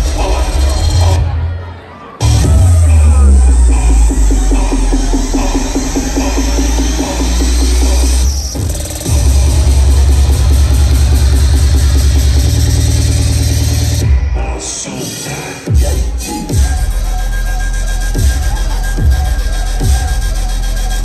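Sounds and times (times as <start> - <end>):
heavy bass dance music: 0.0 - 21.0
rising sweep: 2.2 - 14.0.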